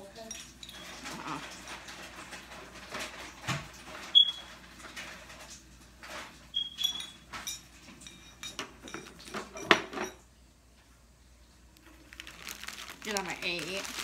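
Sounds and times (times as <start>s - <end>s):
ringing glass clinks: 6.6s - 10.2s.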